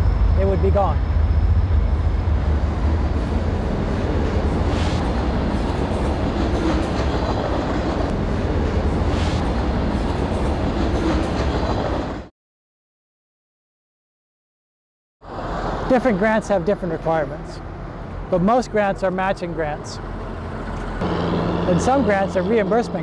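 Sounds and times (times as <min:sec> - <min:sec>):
freight train wheels rumbling: 0:00.0 - 0:12.3.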